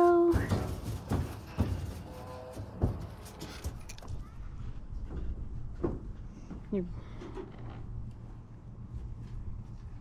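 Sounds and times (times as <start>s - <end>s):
knocks of foals in trailer: 0.0s - 3.8s.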